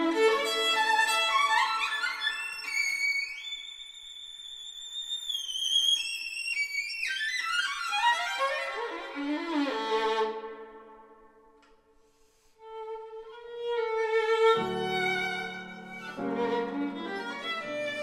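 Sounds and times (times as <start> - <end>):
solo violin: 0.0 - 18.0.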